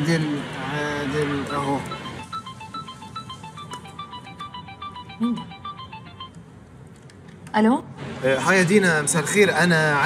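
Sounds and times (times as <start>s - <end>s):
mobile phone ringtone: 1.4s - 6.4s.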